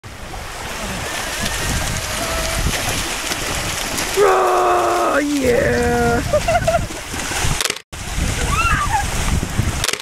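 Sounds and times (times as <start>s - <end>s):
gentle surf on shore: 0.0s - 10.0s
wind buffeting microphone: 0.1s - 9.9s
feet splashing in shallow water: 0.1s - 10.0s.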